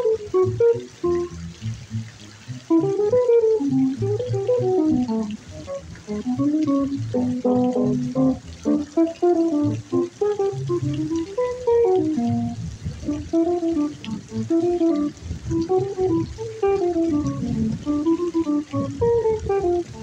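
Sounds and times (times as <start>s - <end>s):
jazz guitar solo: 0.0s - 20.0s.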